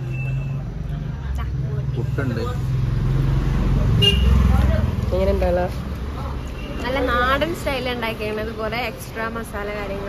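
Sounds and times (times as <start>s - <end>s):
road traffic rumble: 0.0s - 10.0s
vehicle engine passing: 0.0s - 10.0s.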